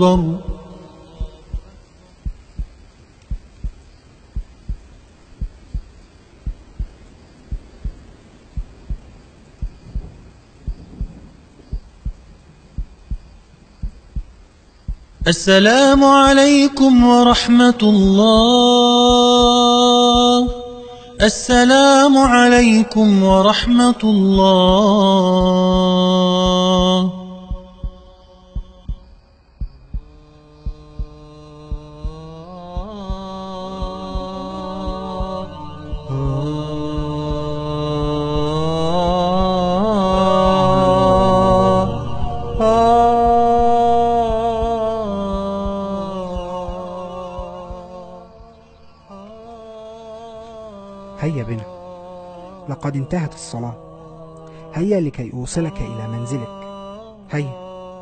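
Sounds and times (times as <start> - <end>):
humming vocal drone: 0.0 - 58.0
heartbeat double thumps: 0.2 - 15.4, 18.1 - 20.7, 24.4 - 48.6.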